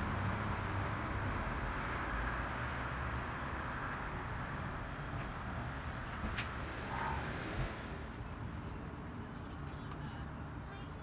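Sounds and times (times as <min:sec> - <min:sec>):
hum of passing cars: 0:00.0 - 0:11.0.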